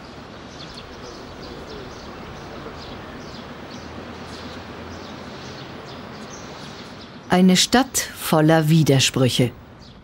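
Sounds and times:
outdoor background noise: 0.0s - 10.0s
small birds chirping: 0.0s - 10.0s.

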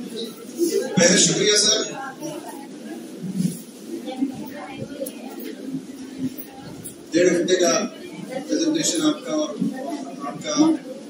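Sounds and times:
faint room background noise: 0.0s - 11.0s.

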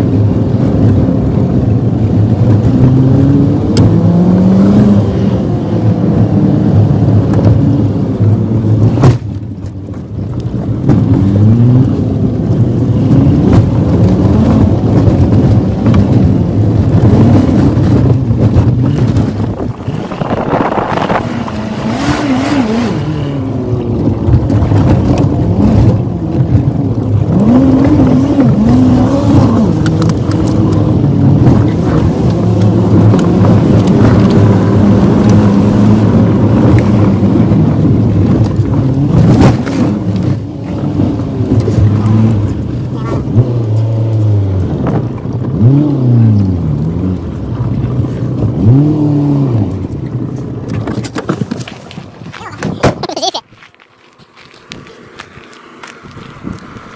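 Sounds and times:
car engine revving: 0.0s - 9.3s, 9.9s - 51.1s
car driving on gravel: 0.0s - 56.9s.

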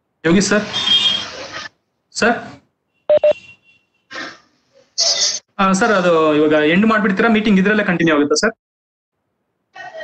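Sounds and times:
short electronic beeps: 3.1s - 3.6s.

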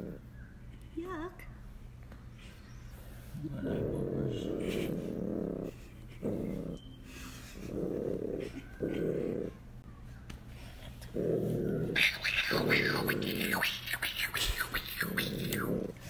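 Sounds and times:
bobcat rumbling: 0.0s - 0.3s, 3.4s - 6.9s, 10.9s - 16.0s.

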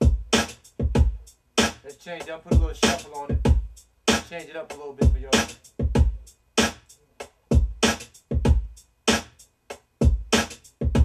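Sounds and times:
hip-hop drum machine beat: 0.0s - 11.0s.

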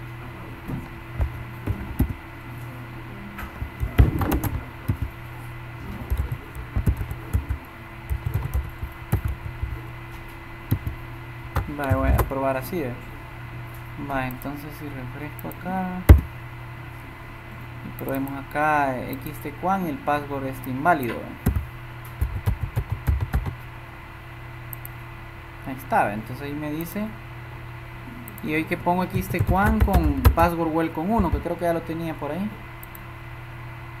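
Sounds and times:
steady low hum: 0.0s - 34.0s
computer keyboard typing: 1.2s - 2.2s, 3.6s - 5.2s, 5.8s - 9.8s, 10.7s - 12.3s, 21.4s - 23.6s, 29.0s - 30.6s, 31.2s - 31.6s.

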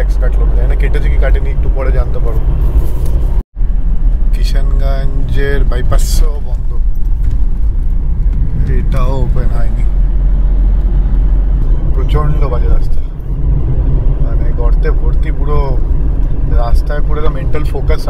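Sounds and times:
man speaking: 0.0s - 2.4s, 4.4s - 6.9s, 8.6s - 10.0s, 11.8s - 13.1s, 14.2s - 15.8s, 16.4s - 18.0s
road and engine rumble in car: 0.0s - 18.0s.

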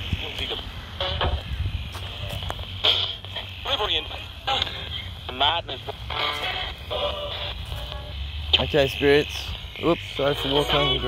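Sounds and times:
radio sweeping through stations: 0.0s - 11.0s.

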